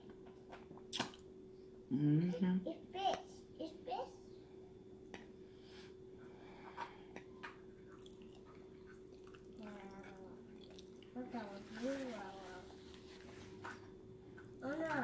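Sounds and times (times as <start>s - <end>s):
faint steady hum: 0.0s - 15.0s
person chewing food: 7.1s - 11.2s.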